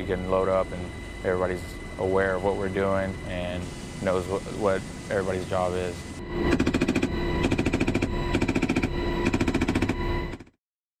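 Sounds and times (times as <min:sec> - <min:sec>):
helicopter engine and rotor hum: 0:00.0 - 0:10.6.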